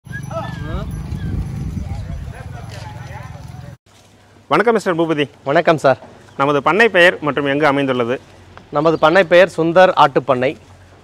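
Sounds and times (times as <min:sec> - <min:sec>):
low rumble of moving herd: 0:00.2 - 0:03.8.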